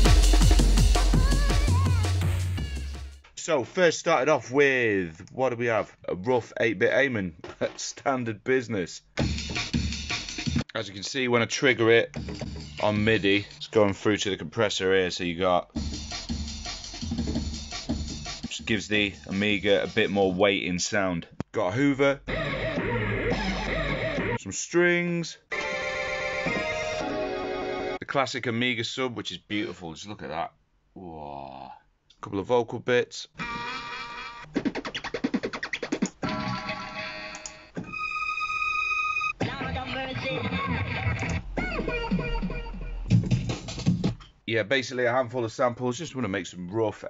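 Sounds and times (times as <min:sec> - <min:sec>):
deep bass: 0:00.0 - 0:03.0
woman singing ahh sample: 0:01.1 - 0:02.3
vocal snippets: 0:31.0 - 0:31.9
rapid stutter: 0:34.5 - 0:36.2, 0:42.9 - 0:44.2.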